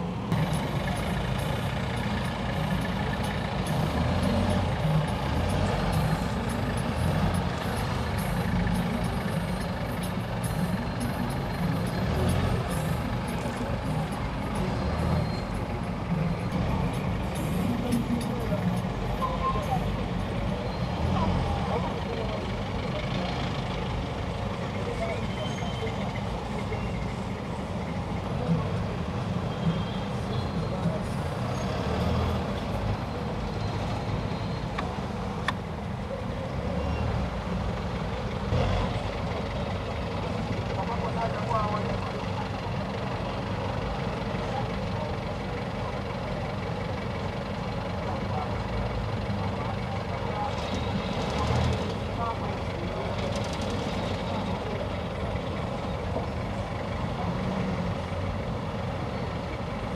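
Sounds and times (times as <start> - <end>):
indistinct voices: 0.0 - 58.2
traffic rumble from inside vehicle: 0.0 - 59.9.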